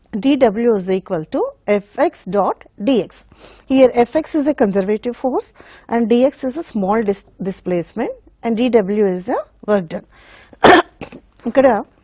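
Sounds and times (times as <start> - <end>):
woman clearing throat: 10.6 - 11.3
woman coughing: 10.6 - 11.3.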